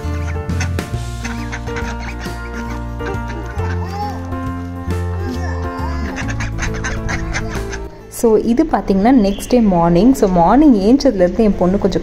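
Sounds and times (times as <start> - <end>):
ducks quacking: 0.0 - 8.1
background music with steady beat: 0.0 - 12.0.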